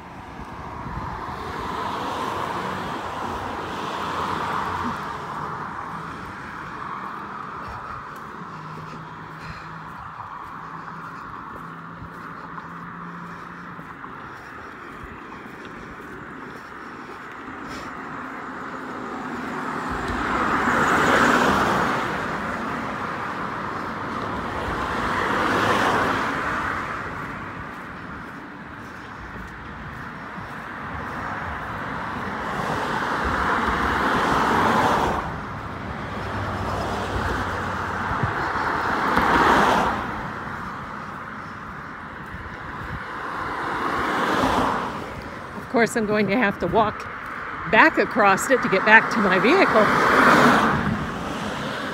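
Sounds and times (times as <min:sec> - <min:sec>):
cars passing close by: 0:00.0 - 0:51.9
steady traffic noise: 0:00.0 - 0:51.9.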